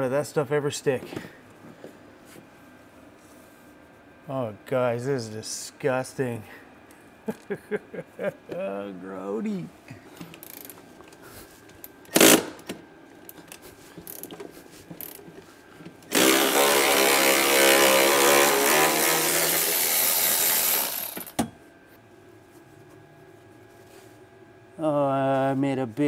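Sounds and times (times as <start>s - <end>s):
cordless electric ratchet running: 10.3s - 10.8s, 12.0s - 12.6s, 14.0s - 14.3s, 16.1s - 21.4s.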